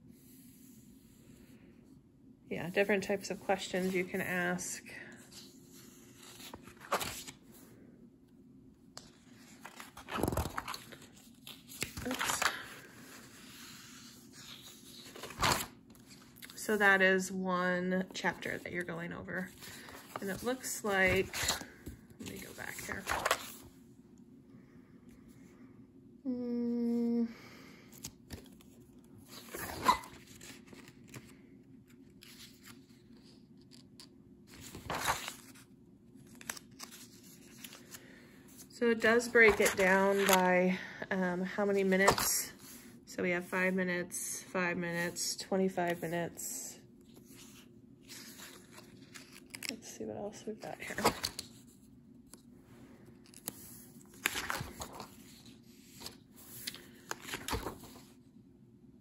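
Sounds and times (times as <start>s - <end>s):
paper page flipping: 5.3s - 7.6s, 9.0s - 16.6s, 19.5s - 23.7s, 27.9s - 40.5s, 47.1s - 49.8s, 50.6s - 52.5s, 53.2s - 58.2s.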